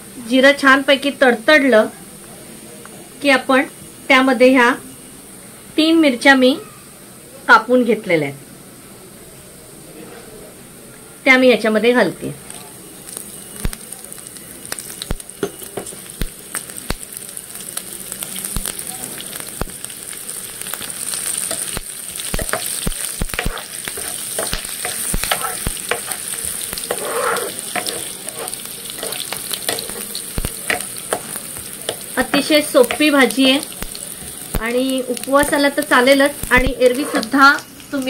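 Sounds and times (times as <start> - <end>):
seeds sizzling in hot oil: 12.0 - 38.0
spatula scraping pan: 22.3 - 33.1, 35.4 - 37.5.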